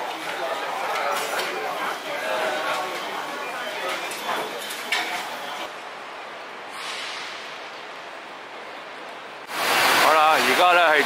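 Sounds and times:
busy bus station noise: 0:00.0 - 0:11.0
city background noise: 0:00.0 - 0:11.0.

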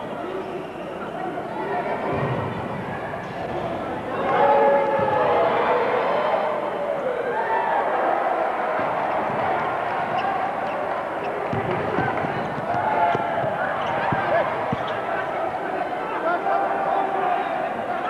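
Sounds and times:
arena crowd noise: 0:00.0 - 0:18.0
basketball bouncing on court: 0:11.4 - 0:15.0.

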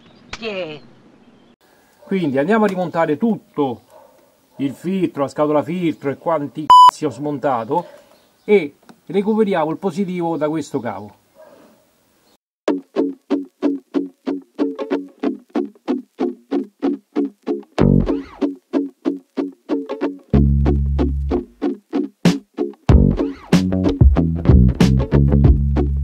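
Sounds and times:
plucked string background music: 0:12.7 - 0:26.0
bass line: 0:17.8 - 0:18.2, 0:20.4 - 0:21.6, 0:22.9 - 0:26.0.

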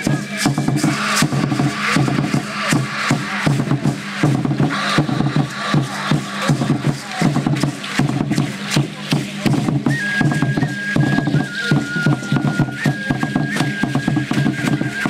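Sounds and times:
wooden drums beaten with sticks: 0:00.0 - 0:15.0.

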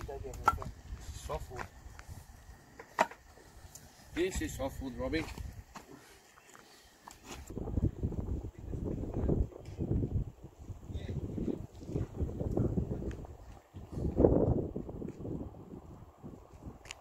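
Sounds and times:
wind buffeting microphone: 0:00.0 - 0:02.6, 0:03.2 - 0:05.8, 0:07.3 - 0:17.0.

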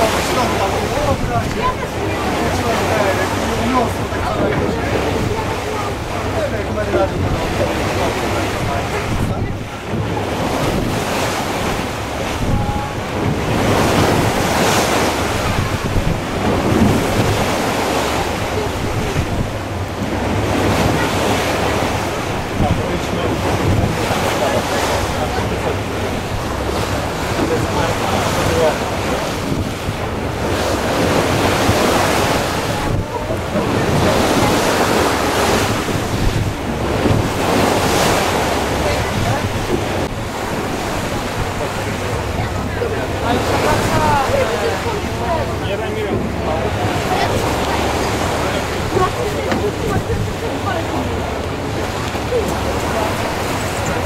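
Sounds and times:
sea waves rushing: 0:00.0 - 0:54.0
wind buffeting microphone: 0:00.0 - 0:54.0.

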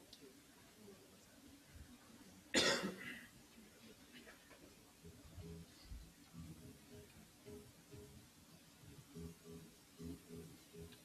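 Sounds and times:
faint room noise: 0:00.0 - 0:11.0
sharp cough: 0:02.5 - 0:03.3.

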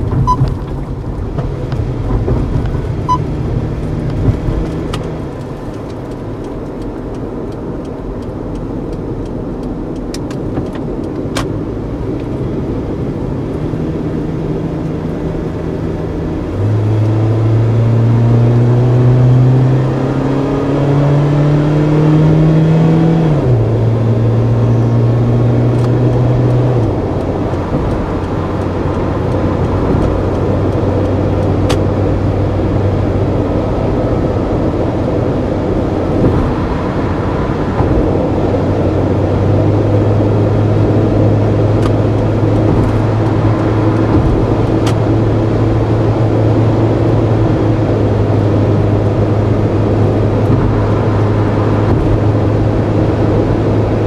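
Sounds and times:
car engine accelerating: 0:00.0 - 0:54.0.

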